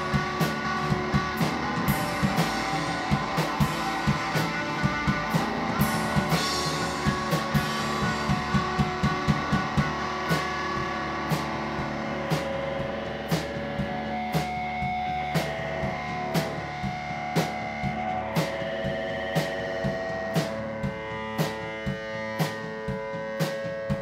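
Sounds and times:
rock band playing live: 0.0s - 24.0s.

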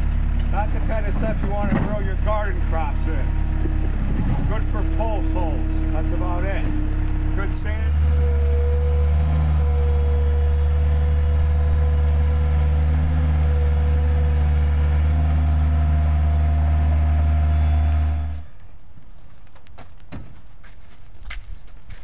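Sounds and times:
loader engine running with whine: 0.0s - 19.7s.

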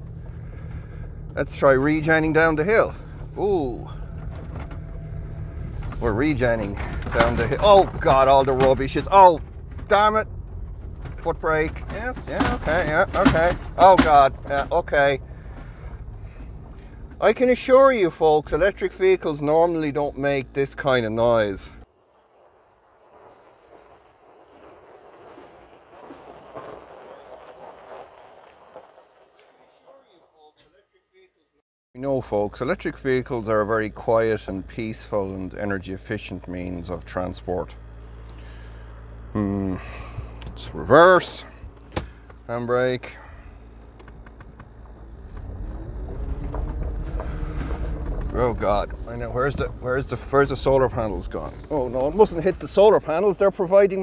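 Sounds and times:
truck knocks and rattles: 0.0s - 18.6s, 43.6s - 53.2s
tyres crunching on gravel: 0.0s - 19.4s, 22.0s - 30.2s, 33.0s - 54.0s
electric motor whine rising: 0.0s - 20.3s, 32.8s - 42.6s, 43.4s - 53.5s.

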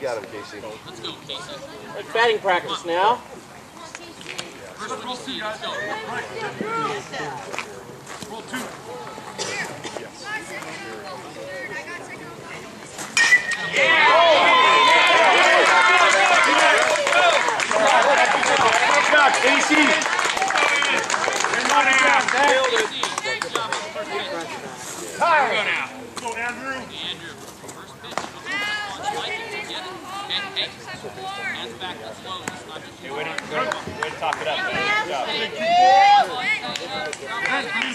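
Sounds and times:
metal bat hitting ball: 13.2s - 13.8s
crowd cheering and shouting: 13.2s - 24.6s, 33.6s - 37.9s.

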